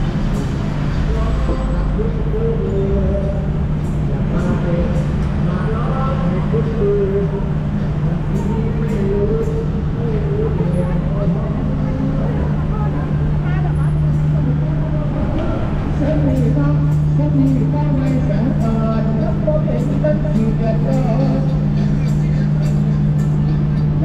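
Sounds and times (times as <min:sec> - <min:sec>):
traffic engine hum: 0:00.0 - 0:24.0
people talking: 0:01.0 - 0:03.5, 0:04.1 - 0:07.4, 0:08.0 - 0:24.0.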